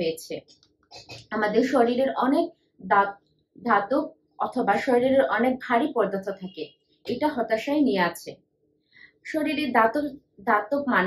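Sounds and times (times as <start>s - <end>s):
woman speaking: 0.0s - 0.4s, 1.3s - 8.3s, 9.3s - 11.0s.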